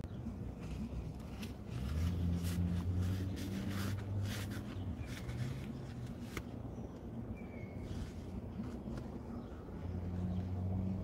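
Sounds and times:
low hum inside car cabin: 0.1s - 11.0s.

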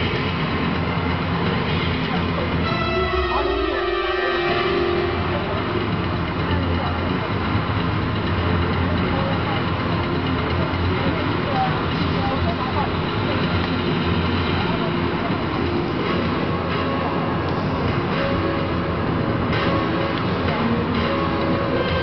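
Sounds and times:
murmur of voices: 0.0s - 22.0s.

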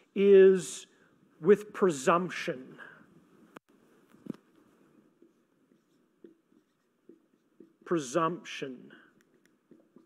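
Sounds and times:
man speaking: 0.0s - 3.0s, 7.8s - 9.1s
marker writing on whiteboard: 4.6s - 8.1s, 9.0s - 10.0s.

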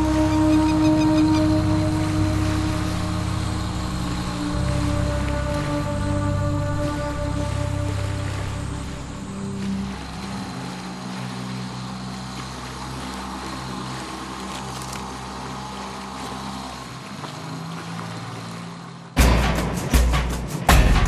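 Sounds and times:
soft ambient music: 0.0s - 21.0s.

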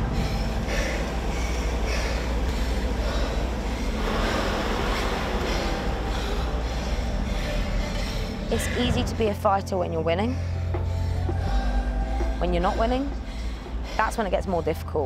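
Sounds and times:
exercise bike flywheel whirring: 0.0s - 9.2s.

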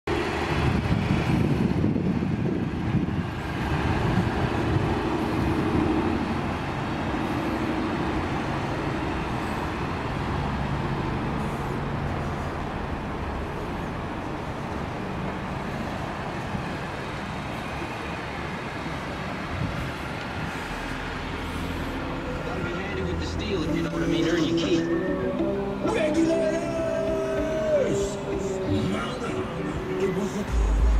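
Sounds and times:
motor vehicle rumble: 0.1s - 30.9s.

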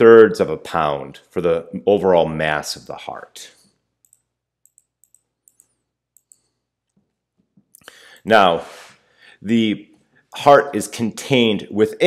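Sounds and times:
computer mouse clicks: 4.0s - 6.6s.

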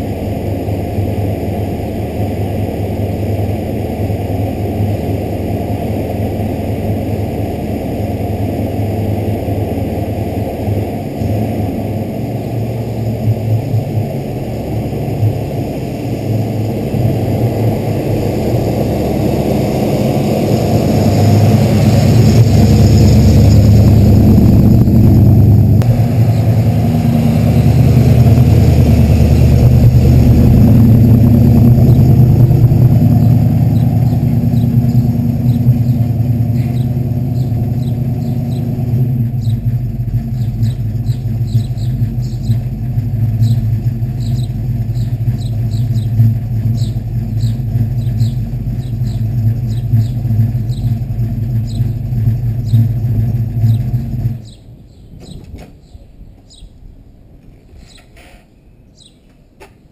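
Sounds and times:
car engine running: 0.0s - 54.6s
birds chirping: 26.2s - 30.8s, 31.6s - 59.6s.

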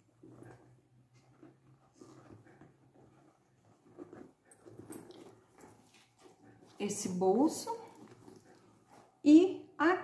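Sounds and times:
handbag rustling: 0.0s - 9.2s.

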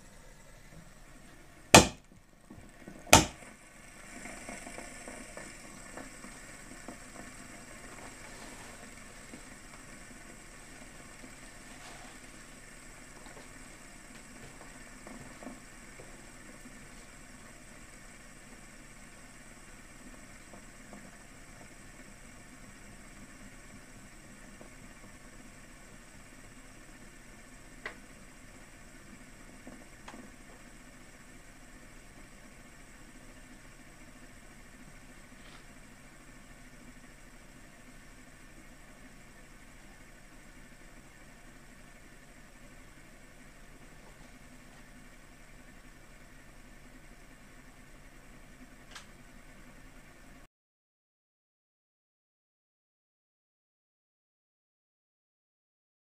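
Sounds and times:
fidget spinner whirring on glass: 0.0s - 50.0s.

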